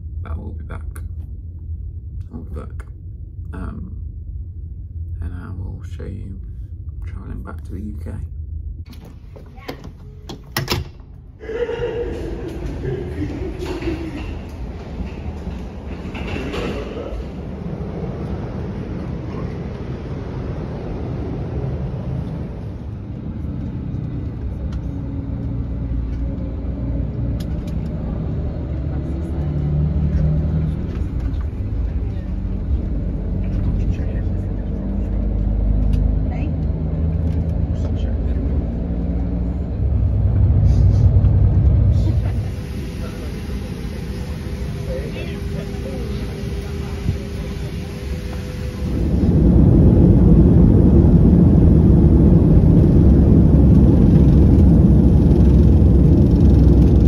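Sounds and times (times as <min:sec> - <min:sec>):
coach engine and road rumble: 0:00.0 - 0:57.0
passengers chattering: 0:11.4 - 0:22.8, 0:27.8 - 0:36.6, 0:41.8 - 0:51.8.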